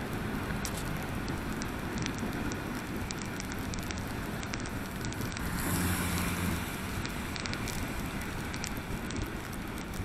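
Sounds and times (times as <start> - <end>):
rain ticking: 0.0 - 10.0
tyre noise on wet road: 0.0 - 10.0.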